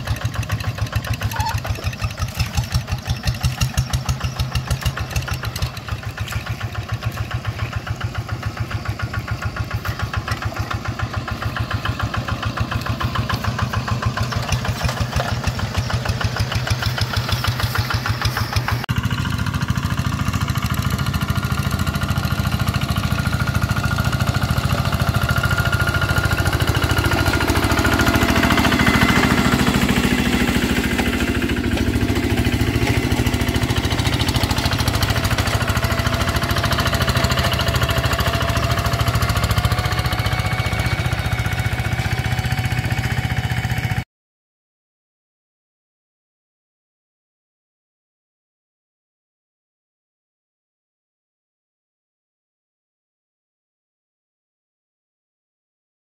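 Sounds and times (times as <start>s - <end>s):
diesel engine chugging: 0.0s - 44.0s.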